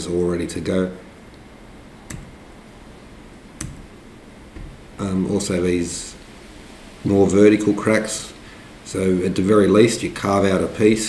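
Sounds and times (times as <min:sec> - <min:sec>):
low room hiss: 0:00.0 - 0:11.0
sharp clicks: 0:02.1 - 0:02.4, 0:03.6 - 0:04.0.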